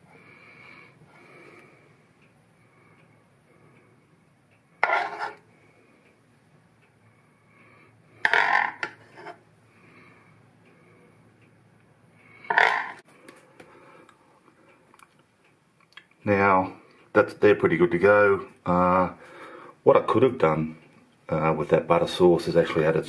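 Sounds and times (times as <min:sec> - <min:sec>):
metal utensil scraping a dish: 0:04.8 - 0:05.4, 0:08.3 - 0:09.4, 0:12.5 - 0:13.0.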